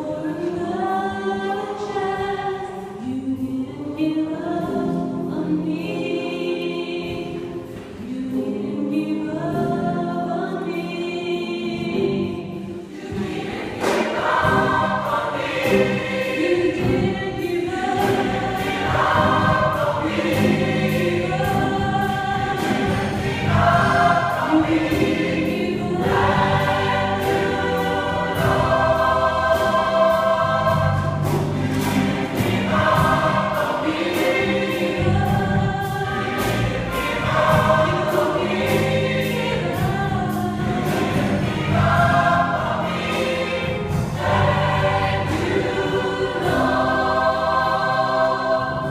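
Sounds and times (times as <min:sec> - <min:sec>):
gospel choir singing: 0:00.0 - 0:48.9.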